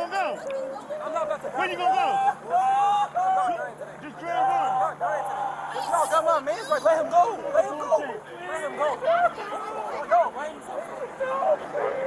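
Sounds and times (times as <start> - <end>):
people shouting: 0.0 - 7.4, 8.3 - 12.0.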